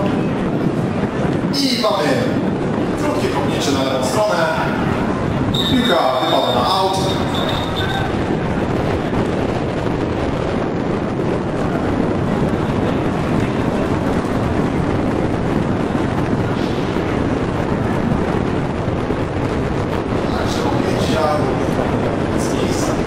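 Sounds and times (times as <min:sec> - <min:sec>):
indistinct voices: 0:00.0 - 0:08.7
wind rumbling on microphone: 0:00.0 - 0:23.0.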